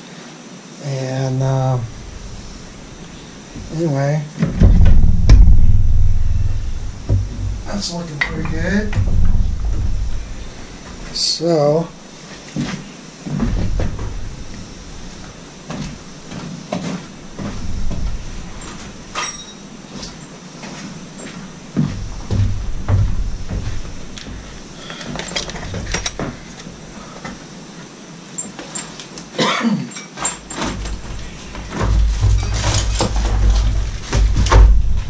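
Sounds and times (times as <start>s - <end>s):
low thuds: 1.4s - 24.8s, 30.7s - 35.0s
tools and metal parts clattering: 4.4s - 26.8s, 28.4s - 35.0s.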